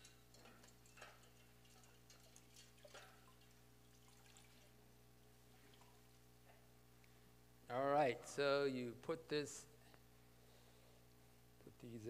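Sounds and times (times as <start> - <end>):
water drips and splashes: 0.0 - 4.8
steady electrical hum: 0.0 - 12.0.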